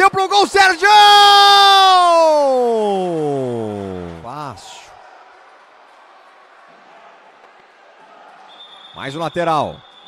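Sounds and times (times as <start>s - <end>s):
crowd hum: 2.5s - 8.8s.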